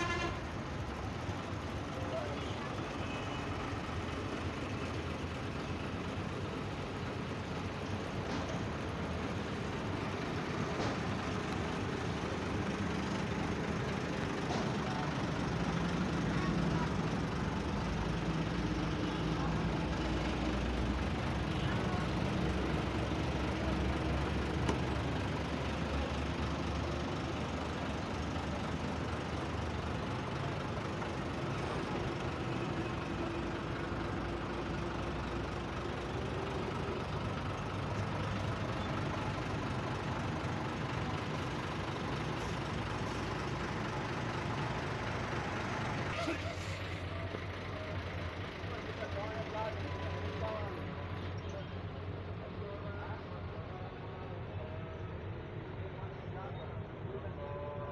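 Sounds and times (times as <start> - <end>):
truck engine idling: 0.0 - 57.9
indistinct talking: 0.4 - 57.9.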